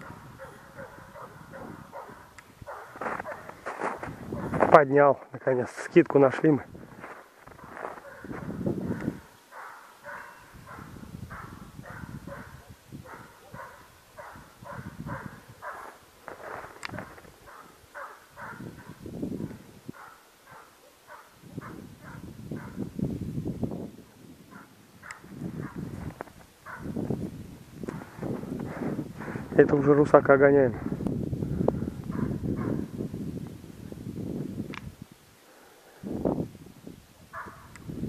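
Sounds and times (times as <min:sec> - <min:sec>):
hound barking: 0:00.0 - 0:03.7, 0:04.3 - 0:04.6, 0:07.6 - 0:16.4, 0:17.0 - 0:22.8, 0:24.5 - 0:25.9, 0:26.6 - 0:27.0, 0:32.1 - 0:32.9, 0:37.3 - 0:37.8.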